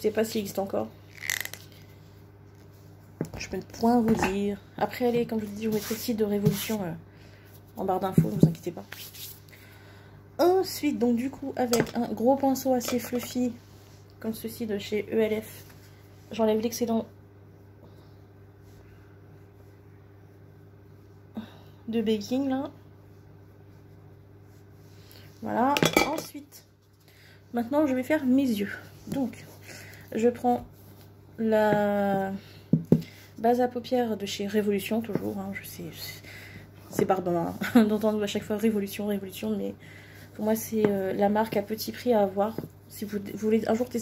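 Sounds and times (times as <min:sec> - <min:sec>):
low steady room hum: 0:00.0 - 0:44.0.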